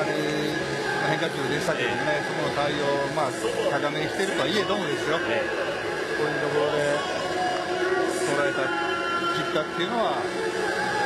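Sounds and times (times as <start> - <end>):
stadium crowd noise: 0.0 - 11.0
voices: 0.0 - 11.0.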